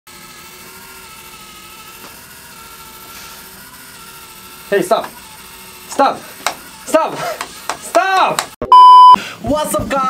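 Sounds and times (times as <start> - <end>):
small motor whining: 0.1 - 8.6.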